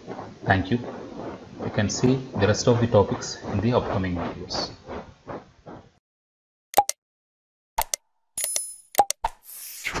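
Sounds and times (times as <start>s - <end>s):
sharp mouse clicks: 6.8s - 7.0s, 7.8s - 9.9s.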